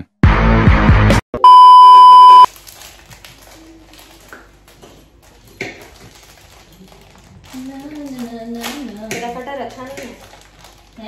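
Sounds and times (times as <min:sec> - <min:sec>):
high-pitched censor bleep: 0:01.4 - 0:02.5.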